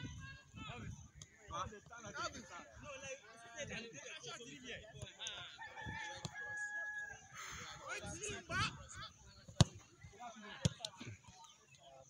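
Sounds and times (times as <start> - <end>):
rooster crowing: 5.6 - 7.3.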